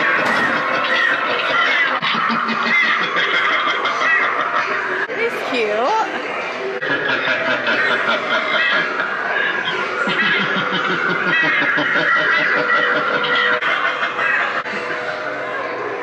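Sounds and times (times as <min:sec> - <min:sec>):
snickering laughter: 0:00.0 - 0:05.1, 0:06.8 - 0:15.8.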